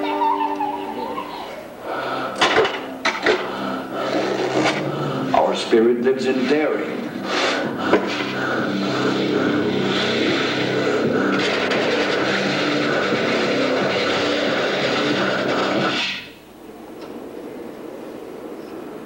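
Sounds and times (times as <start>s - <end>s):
low hum: 0.0s - 19.0s
skis hissing down track: 6.3s - 16.4s.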